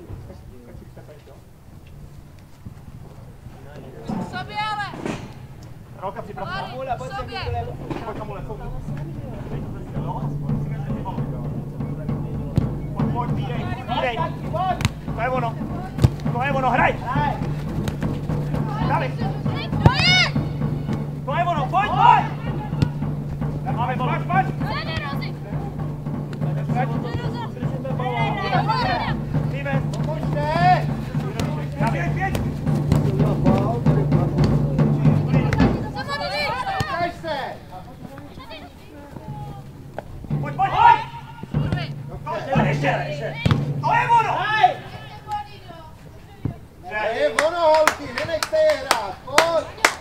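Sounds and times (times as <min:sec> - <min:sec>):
low steady hum: 0:05.3 - 0:35.8
players and coaches shouting: 0:06.0 - 0:46.0, 0:46.6 - 0:50.0
sharp knocks: 0:07.4 - 0:36.2.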